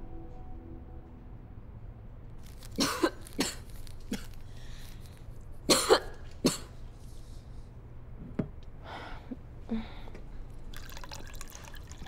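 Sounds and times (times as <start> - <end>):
woman coughing: 2.8 - 4.3, 5.7 - 6.8.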